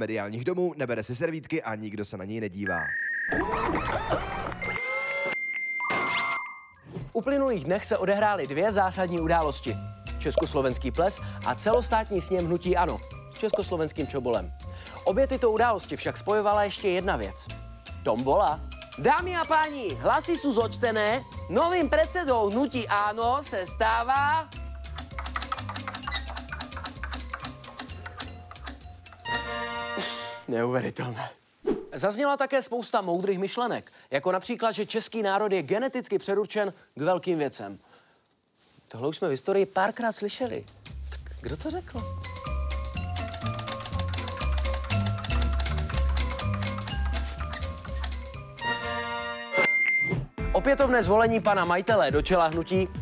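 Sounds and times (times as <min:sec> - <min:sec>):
prize wheel pointer clicking: 0:24.8 - 0:29.3, 0:43.1 - 0:48.4
steady high beep: 0:49.5 - 0:50.2.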